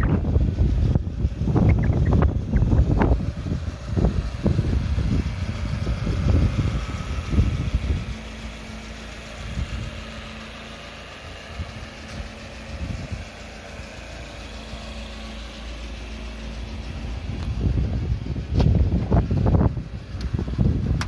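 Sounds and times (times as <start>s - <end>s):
wind buffeting microphone: 0.0s - 8.3s, 9.3s - 10.1s, 11.5s - 13.4s, 16.8s - 21.0s
engine idling: 0.0s - 21.0s.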